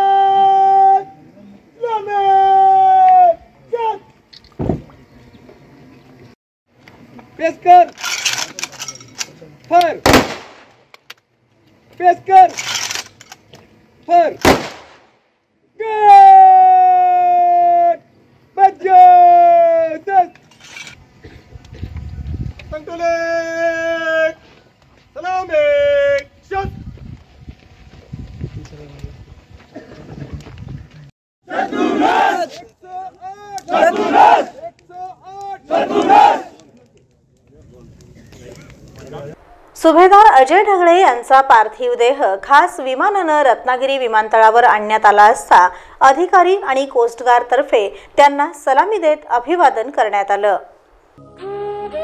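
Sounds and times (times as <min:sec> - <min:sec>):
outdoor crowd murmur: 0:00.0 - 0:14.2, 0:19.8 - 0:22.8, 0:27.1 - 0:41.3
person shouting command: 0:01.8 - 0:04.0, 0:15.8 - 0:18.0, 0:31.5 - 0:36.6
man calling out: 0:01.8 - 0:04.1, 0:18.6 - 0:20.3, 0:32.1 - 0:36.5
rifle volley with echo: 0:10.0 - 0:10.8, 0:14.4 - 0:15.2.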